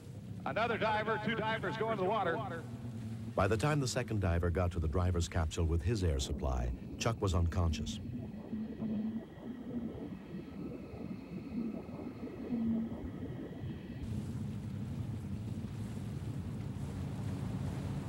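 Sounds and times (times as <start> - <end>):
boat engine running: 0.0 - 18.0
faint steady tones: 0.0 - 18.0
muffled underwater rumble: 0.0 - 18.0.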